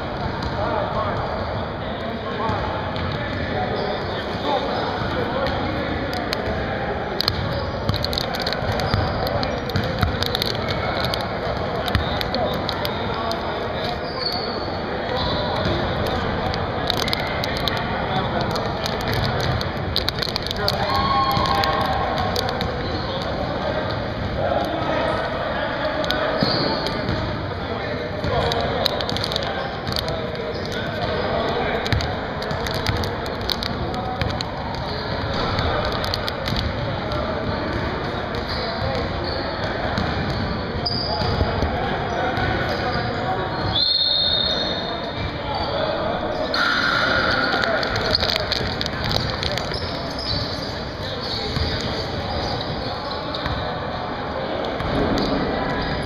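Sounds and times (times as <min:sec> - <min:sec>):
voices of players: 0:00.0 - 0:56.0
high-pitched squeaks: 0:43.8 - 0:53.4.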